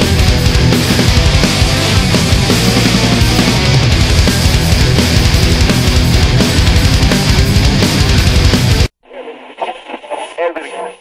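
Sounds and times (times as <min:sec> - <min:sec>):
tinny voice through speaker: 0:09.0 - 0:11.0.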